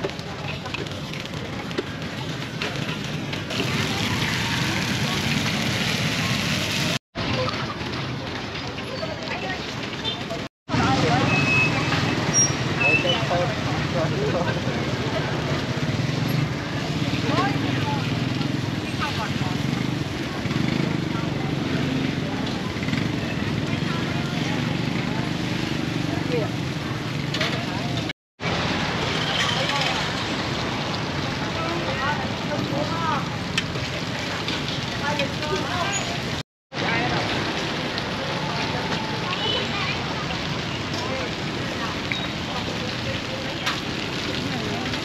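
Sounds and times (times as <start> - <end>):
people talking: 0.0 - 15.7, 16.4 - 28.1, 29.2 - 30.3, 31.1 - 45.0
motorbike engines running: 0.0 - 45.0
traffic: 0.0 - 45.0.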